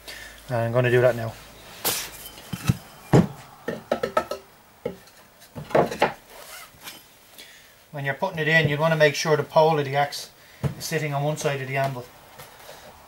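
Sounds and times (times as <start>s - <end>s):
wood knocking on wood: 2.5s - 5.0s.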